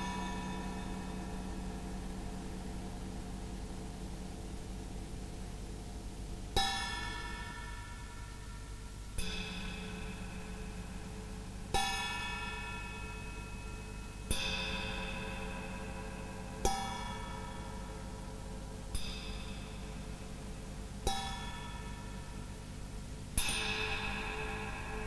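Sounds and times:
faint sustained low tones: 0.0s - 25.0s.

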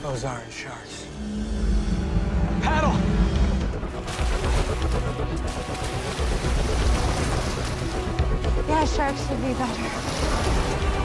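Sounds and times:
dramatic music: 0.0s - 11.0s
deep rumble: 0.7s - 11.0s
rushing splashing water: 3.8s - 11.0s.

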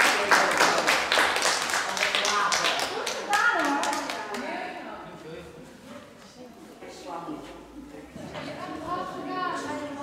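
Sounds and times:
hand clapping: 0.0s - 4.5s.

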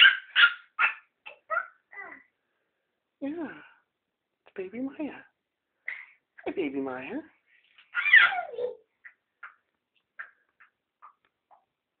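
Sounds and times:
child squealing: 7.9s - 8.8s.

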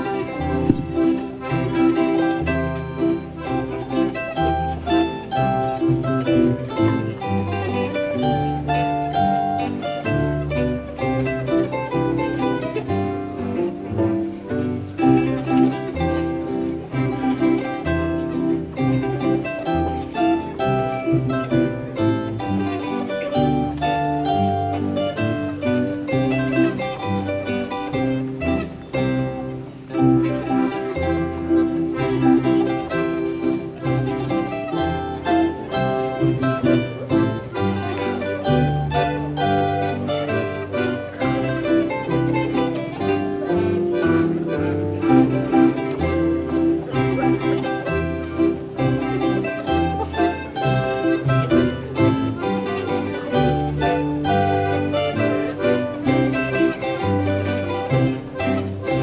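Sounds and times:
double bass pulse: 0.0s - 59.0s
folk string ensemble playing polka: 0.0s - 59.0s.

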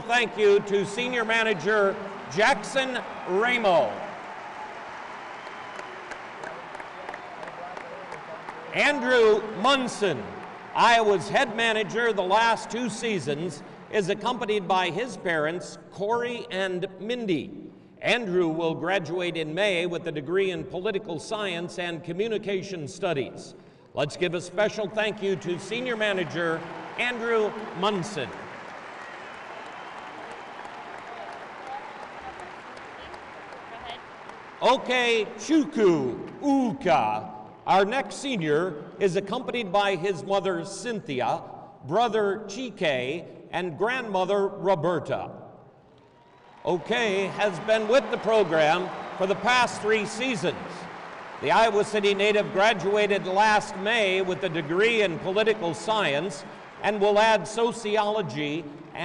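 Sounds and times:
crowd applauding: 0.0s - 14.3s, 25.1s - 36.0s, 45.9s - 59.0s.

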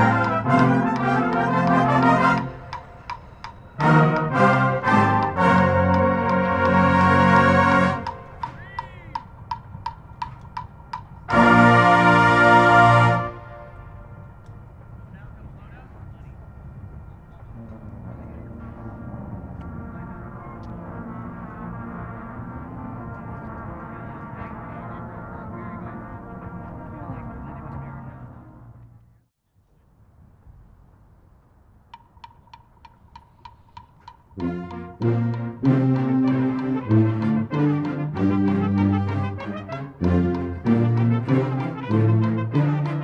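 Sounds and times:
brass hornline playing: 0.0s - 14.8s, 17.7s - 28.9s, 34.4s - 43.0s
open-air murmur: 0.0s - 43.0s
electronic metronome beeping: 0.6s - 6.4s.

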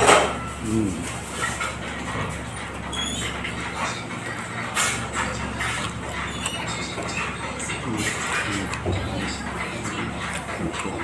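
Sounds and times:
man chewing food: 0.4s - 11.0s.

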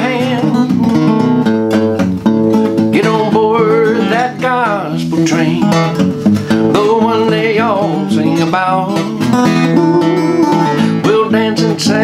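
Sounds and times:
country gospel song: 0.0s - 1.6s, 2.5s - 12.0s
acoustic guitar strummed: 0.0s - 12.0s.

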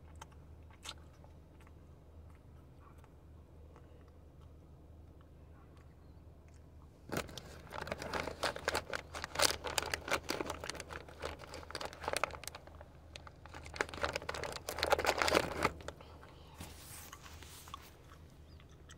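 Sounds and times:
plastic packaging crinkling: 7.1s - 16.0s.

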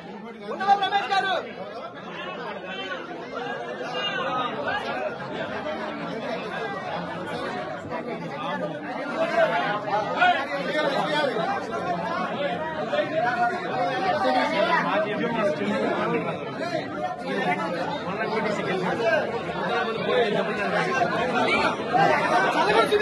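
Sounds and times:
crowd of men talking: 0.0s - 23.0s.

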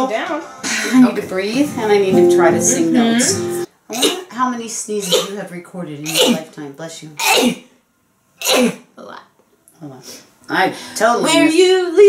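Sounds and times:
woman sneezing: 5.0s - 5.4s, 6.1s - 6.5s, 7.2s - 7.7s, 8.4s - 8.9s.

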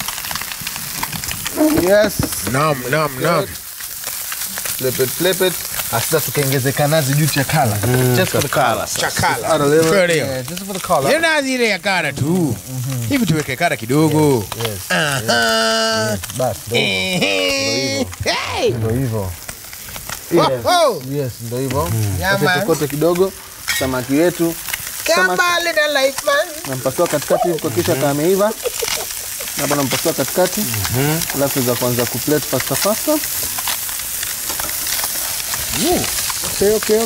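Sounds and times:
fish sizzling in hot oil: 0.0s - 37.0s
person speaking: 1.5s - 3.6s, 6.4s - 11.2s, 12.1s - 19.4s, 20.2s - 23.1s, 23.8s - 33.2s
cream being poured: 26.6s - 37.0s.

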